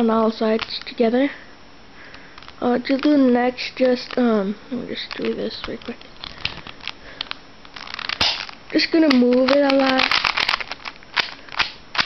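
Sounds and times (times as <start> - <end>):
plastic cube clicks: 0.5 - 1.0, 5.0 - 12.0.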